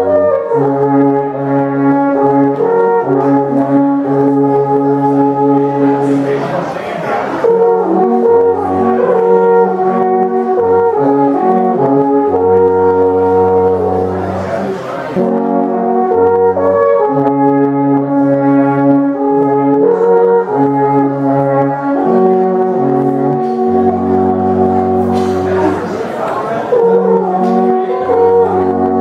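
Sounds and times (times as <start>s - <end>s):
alphorns playing in harmony: 0.0s - 29.0s.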